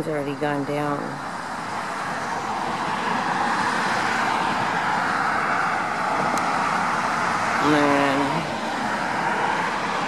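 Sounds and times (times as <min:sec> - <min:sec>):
road traffic hiss: 0:00.0 - 0:10.0.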